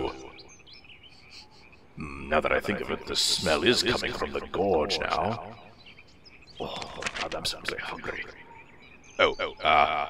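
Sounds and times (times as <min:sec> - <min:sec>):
man's voice: 0:00.0 - 0:00.4, 0:02.0 - 0:05.6.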